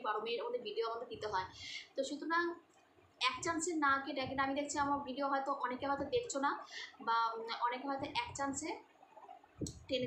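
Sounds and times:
woman speaking: 0.0 - 8.9, 9.7 - 10.0.

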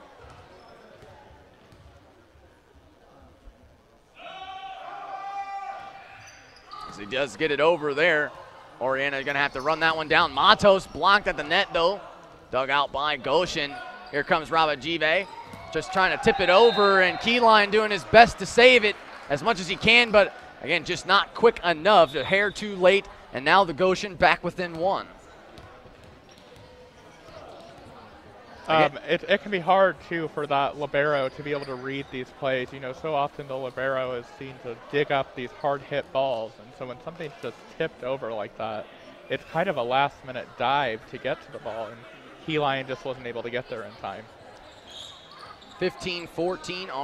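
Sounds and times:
distant voices in echoing hall: 0.0 - 23.4, 25.0 - 28.7, 29.7 - 47.0
ball bouncing on wooden court: 0.2 - 2.0, 15.4 - 15.8, 25.5 - 28.0.

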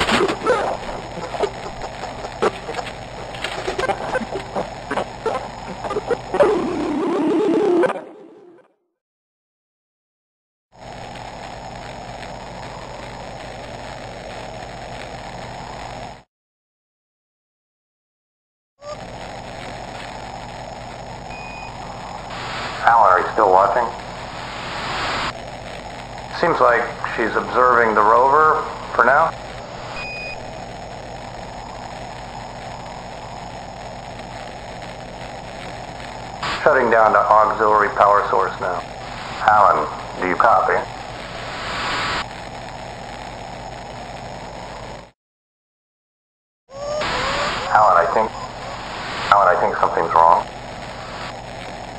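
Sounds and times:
static-like hum: 0.0 - 8.6, 10.8 - 16.3, 18.8 - 45.2, 46.7 - 51.9
steady rushing noise: 19.0 - 44.3.

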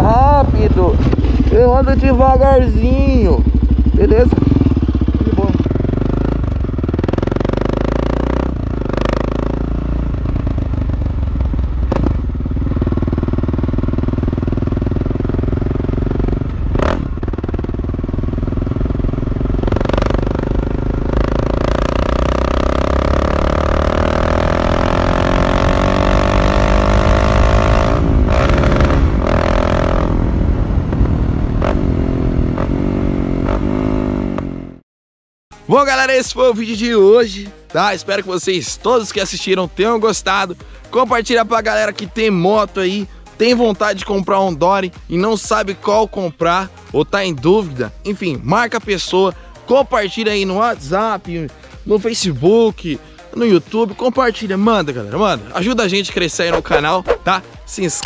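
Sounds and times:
motorcycle engine running: 0.0 - 34.8, 54.8 - 58.0.

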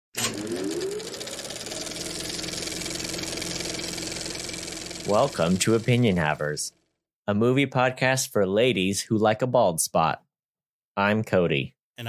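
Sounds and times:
small machine whining and clattering: 0.1 - 7.0.

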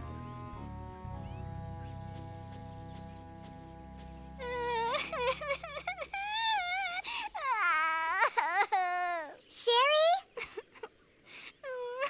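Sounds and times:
cartoon girl crying and wailing: 4.4 - 9.4
sobbing gasps: 6.1 - 7.5.

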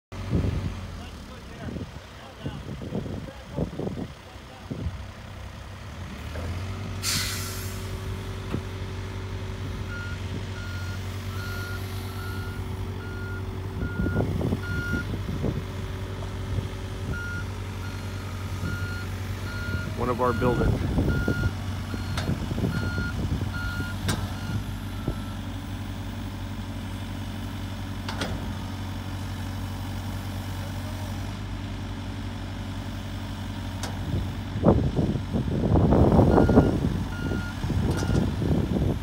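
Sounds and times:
diesel engine running: 0.1 - 39.0
air hiss: 7.0 - 7.9
reversing alarm beeping: 9.9 - 15.1, 17.1 - 25.4, 36.3 - 38.2.

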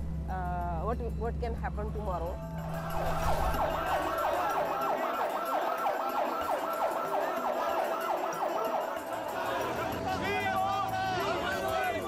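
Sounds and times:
emergency siren yelping: 2.6 - 12.0.

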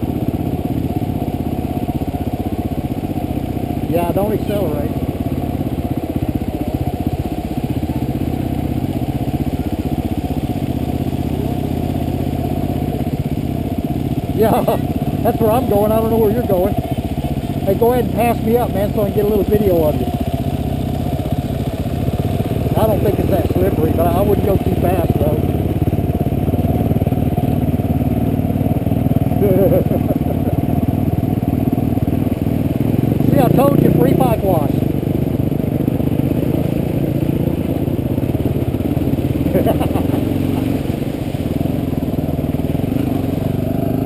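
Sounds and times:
motorcycle engine running: 0.0 - 44.0.

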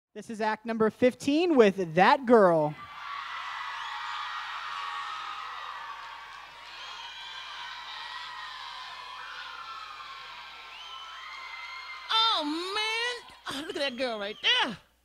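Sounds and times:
crowd cheering: 2.8 - 14.8
high shouts and whoops: 2.8 - 14.8.

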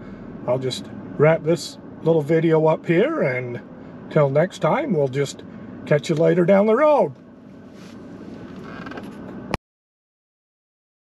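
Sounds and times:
vehicle cabin background noise: 0.0 - 9.6.

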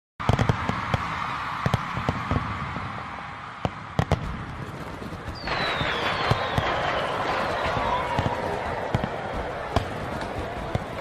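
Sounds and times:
fireworks bangs and crackles: 0.2 - 11.0
falling whistle: 5.4 - 8.5.

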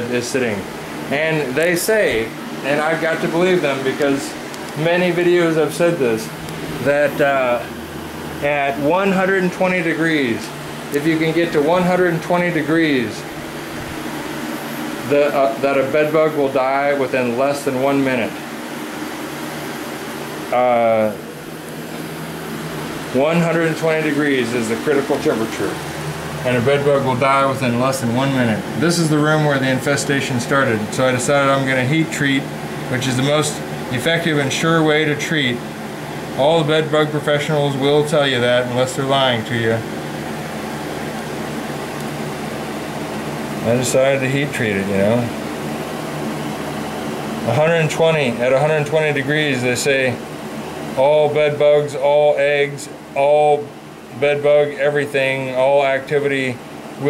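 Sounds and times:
gas heater hissing: 0.0 - 57.0.

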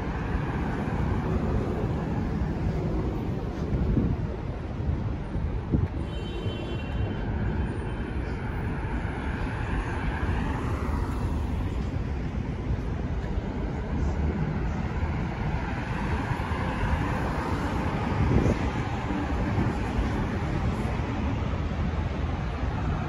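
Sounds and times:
cars driving past: 7.0 - 23.0.

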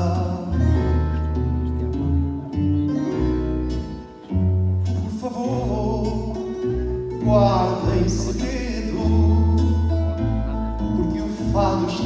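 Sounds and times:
plucked guitars: 0.0 - 12.0.

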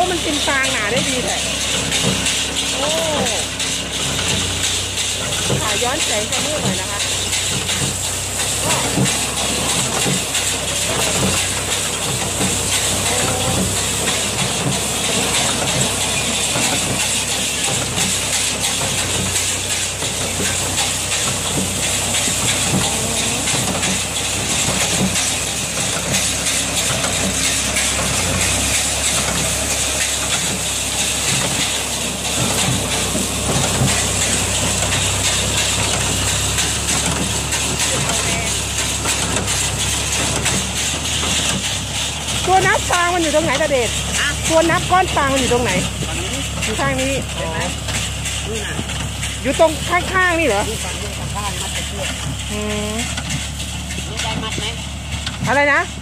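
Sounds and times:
baler mechanical din: 0.0 - 56.0
tractor engine hum: 0.0 - 56.0.

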